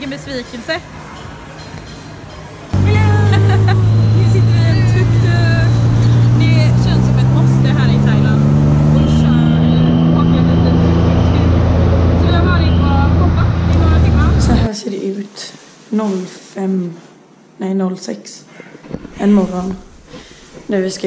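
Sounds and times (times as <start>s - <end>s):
auto rickshaw engine drone: 2.7s - 14.7s.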